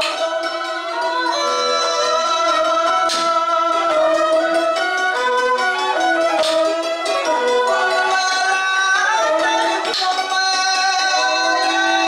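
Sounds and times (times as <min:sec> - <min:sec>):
bowed fiddle held notes: 0:00.0 - 0:12.0
plucked strings ensemble: 0:00.0 - 0:12.0.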